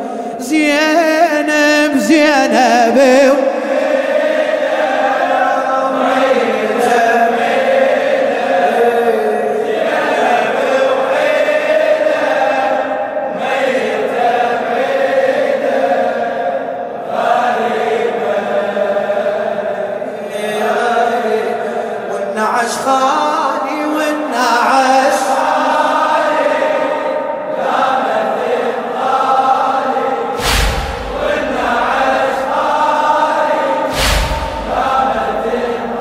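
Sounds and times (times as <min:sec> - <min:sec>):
men chanting in unison: 0:00.0 - 0:36.0.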